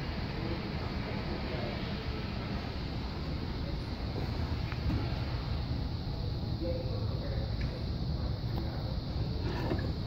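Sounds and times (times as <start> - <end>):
low room rumble: 0.0 - 10.0.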